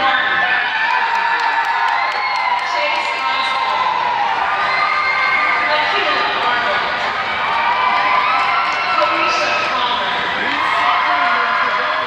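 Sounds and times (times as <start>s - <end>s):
audience cheering and whooping: 0.0s - 12.0s
long rising-and-falling shouts: 0.0s - 12.0s.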